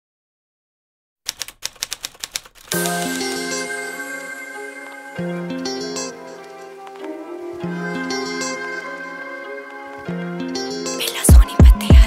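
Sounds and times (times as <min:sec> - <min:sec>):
typewriter key clicks: 0:01.3 - 0:03.2
music with held notes: 0:02.7 - 0:12.0.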